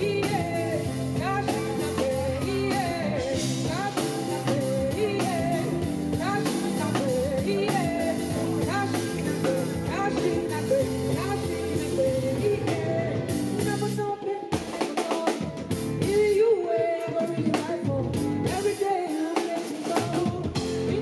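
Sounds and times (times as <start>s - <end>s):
bass: 0.0s - 14.2s, 15.4s - 16.4s, 17.2s - 18.8s, 19.9s - 21.0s
drum kit: 0.0s - 21.0s
keyboards: 0.0s - 21.0s
person singing: 0.0s - 21.0s.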